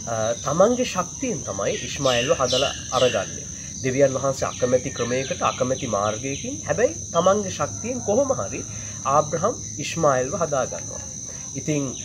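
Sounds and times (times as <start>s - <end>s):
high-pitched insect whine: 0.0s - 12.0s
man speaking: 0.0s - 12.0s.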